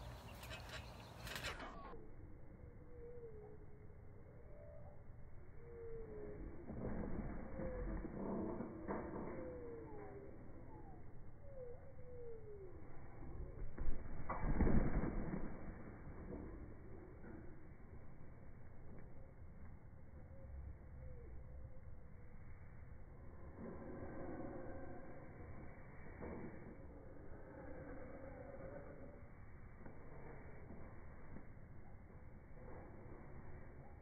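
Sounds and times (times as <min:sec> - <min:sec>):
low rumble: 0:00.0 - 0:34.0
slowed low thuds of trampoline mat: 0:13.4 - 0:16.9.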